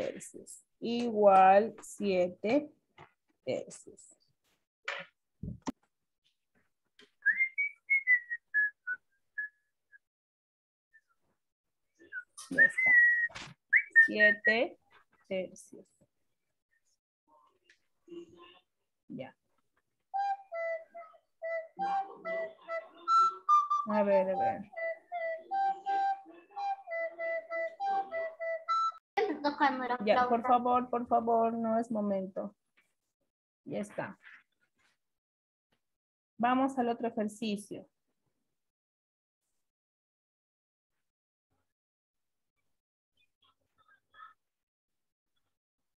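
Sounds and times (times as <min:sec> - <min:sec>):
person whistling a tune: 0:07.2 - 0:10.0, 0:12.1 - 0:14.4, 0:20.2 - 0:29.0.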